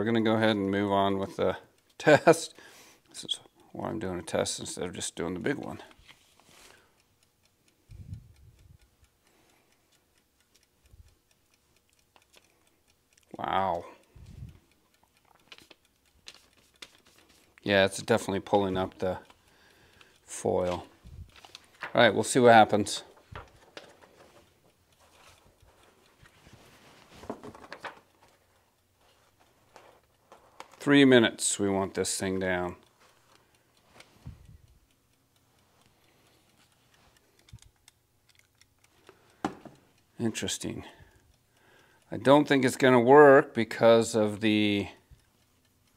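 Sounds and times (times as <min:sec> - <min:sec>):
egg timer ticking: 0:00.0 - 0:45.9
faint clicks: 0:05.1 - 0:42.9.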